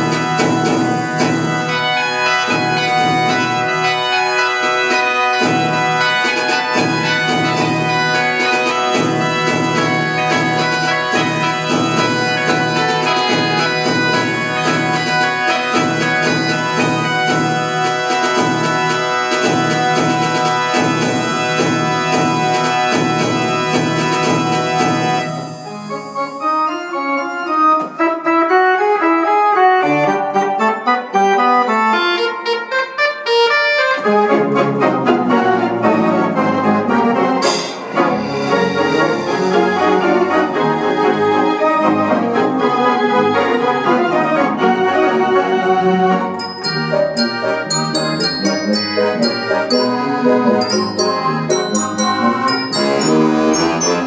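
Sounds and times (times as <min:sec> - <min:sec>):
organ playing chords: 0:00.0 - 0:54.0.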